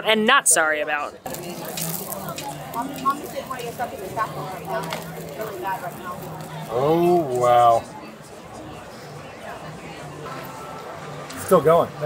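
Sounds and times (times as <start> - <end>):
background chatter of people: 0.0 - 12.0
croissant crust crackling: 1.2 - 7.8.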